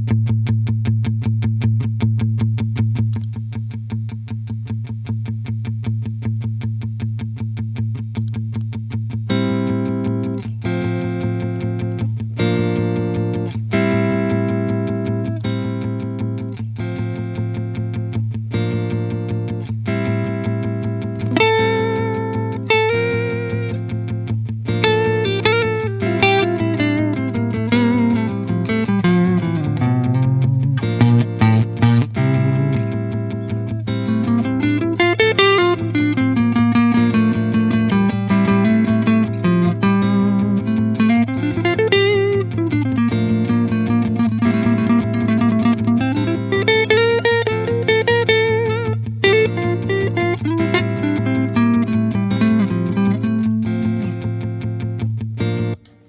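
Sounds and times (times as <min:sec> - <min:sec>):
electric guitar melody: 0:00.0 - 0:56.0
low guitar drone: 0:00.0 - 0:56.0.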